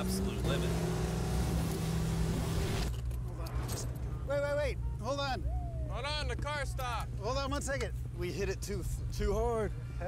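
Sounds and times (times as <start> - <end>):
sports car engine at speed: 0.0 - 3.0.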